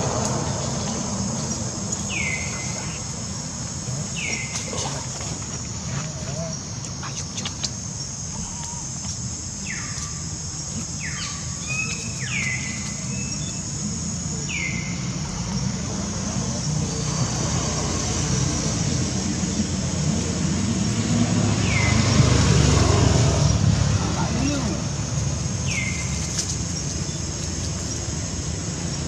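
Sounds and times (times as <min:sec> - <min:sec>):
passing motor vehicle rumble: 0:00.0 - 0:06.7, 0:13.8 - 0:29.0
steady high hiss: 0:00.0 - 0:29.0.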